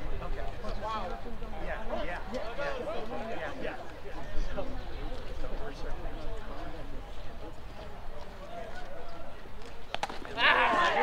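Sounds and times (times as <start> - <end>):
indistinct chatter of voices: 0.0 - 11.0.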